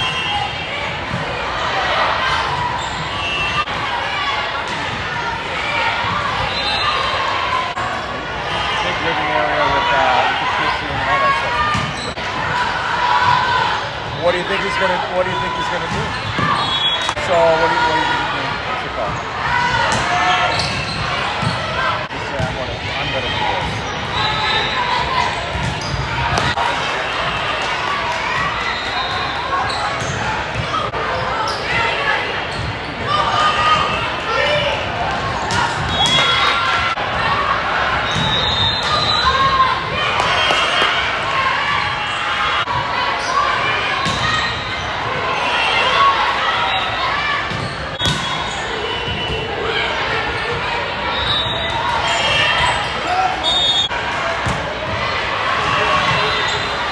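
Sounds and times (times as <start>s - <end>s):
chatter of people: 0.0s - 56.9s
spectators' voices in echoing hall: 0.0s - 56.9s.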